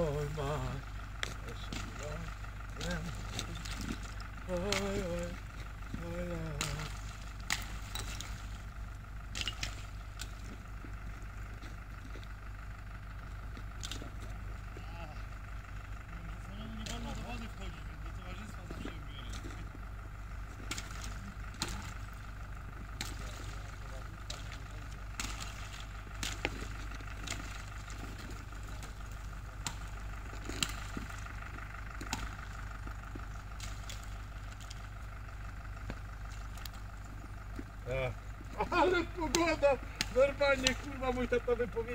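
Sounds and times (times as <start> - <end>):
wading through slushy water: 0.0 - 41.9.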